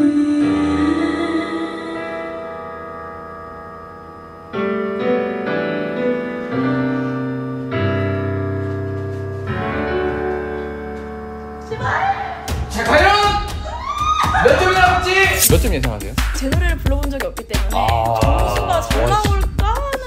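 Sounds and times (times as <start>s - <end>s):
piano ballad backing track: 0.0s - 12.8s.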